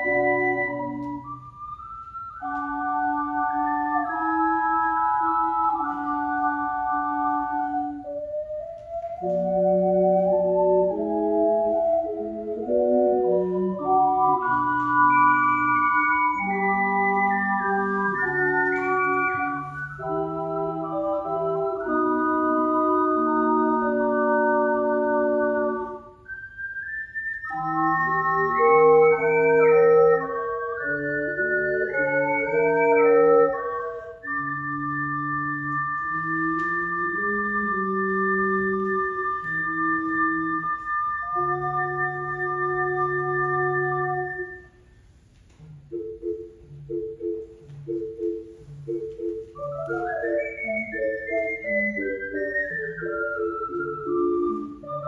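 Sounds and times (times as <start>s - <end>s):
high ocarina line: 0.0s - 44.8s, 45.9s - 55.0s.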